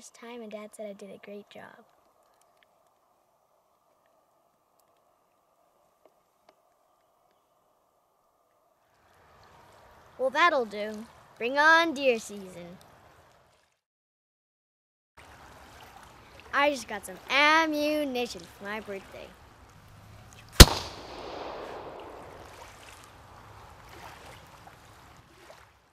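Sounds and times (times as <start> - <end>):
faint outdoor background hiss: 0.0 - 13.5, 15.2 - 25.3
faint clicks: 1.8 - 3.1
rifle shot with echo: 20.6 - 22.6.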